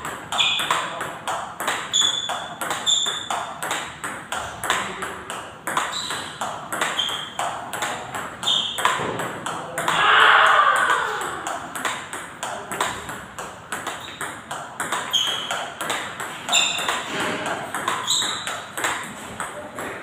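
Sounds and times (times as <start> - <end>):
table tennis balls clicking: 0.0 - 10.1, 10.7 - 20.0.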